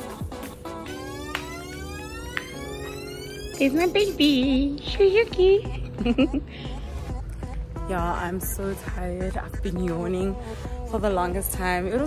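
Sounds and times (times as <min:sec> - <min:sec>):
electronic rising sweep: 0:00.7 - 0:04.5.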